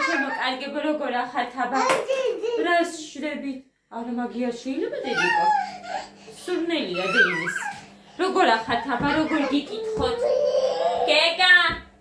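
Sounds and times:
woman talking: 0:00.0 - 0:01.9, 0:02.6 - 0:05.6, 0:06.4 - 0:12.0.

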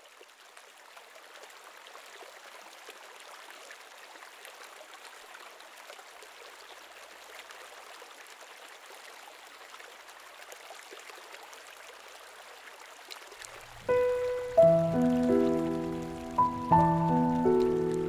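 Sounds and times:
stream water trickling: 0:00.0 - 0:18.0
music note: 0:13.9 - 0:18.0.

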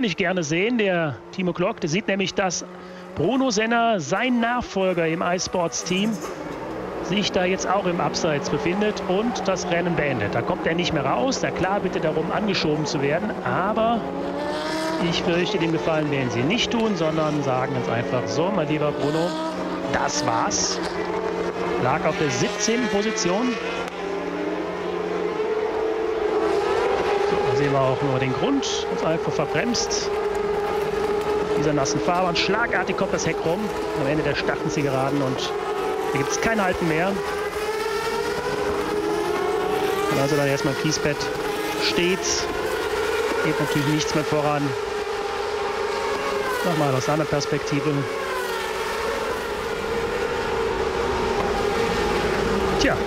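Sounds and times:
racing car engine at high revs: 0:00.0 - 0:53.0.

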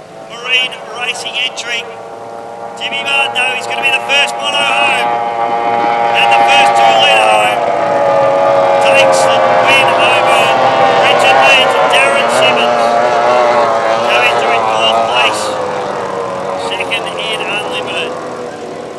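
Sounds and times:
racing outboard engine passing: 0:00.0 - 0:18.9.

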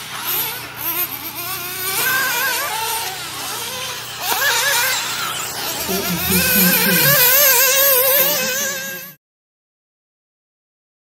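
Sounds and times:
model car engine buzzing whine: 0:00.0 - 0:09.2.

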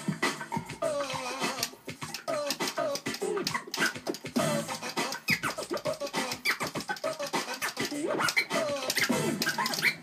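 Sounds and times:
vinyl record scratching: 0:00.0 - 0:10.0.

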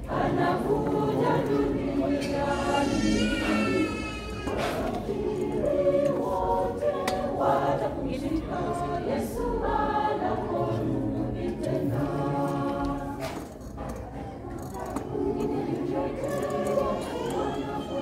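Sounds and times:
choir singing a hymn: 0:00.0 - 0:18.0.

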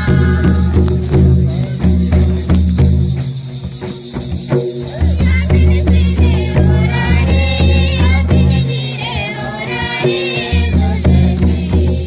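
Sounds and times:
group singing over bass and beat: 0:00.0 - 0:02.0, 0:04.8 - 0:12.0.

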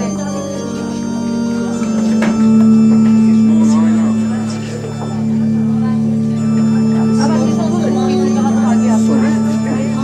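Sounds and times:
electronic organ chords: 0:00.0 - 0:10.0
voices: 0:00.0 - 0:10.0.

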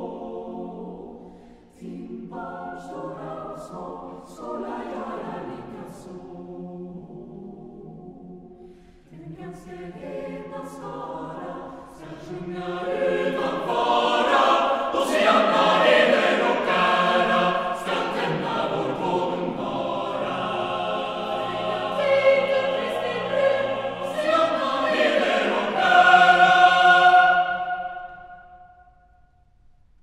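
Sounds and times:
choir singing choral piece: 0:00.0 - 0:29.0.

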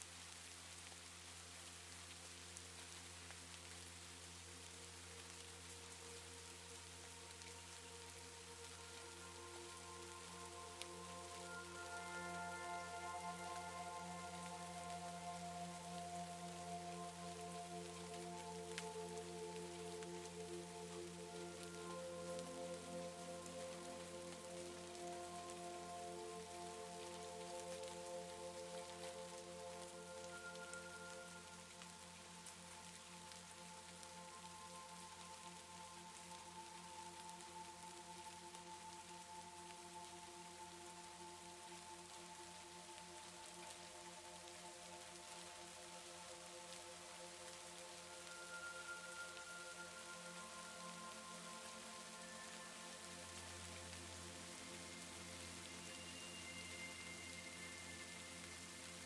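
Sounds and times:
soft ambient music: 0:00.0 - 0:59.0
steady rain: 0:00.0 - 0:59.0.

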